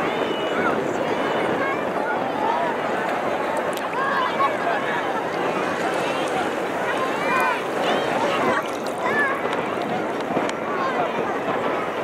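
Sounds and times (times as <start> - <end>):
shallow sea water sloshing: 0.0 - 11.6
distant overlapping voices: 0.0 - 12.0.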